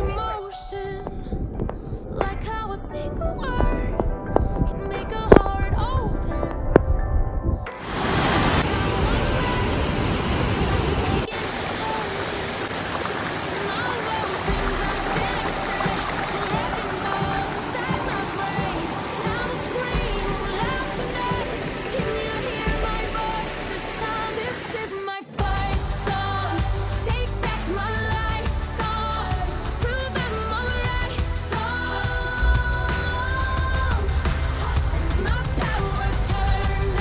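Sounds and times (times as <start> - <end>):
song with singing: 0.0 - 37.0
rush of a shallow creek: 7.8 - 24.7
small waterfall: 7.8 - 24.9.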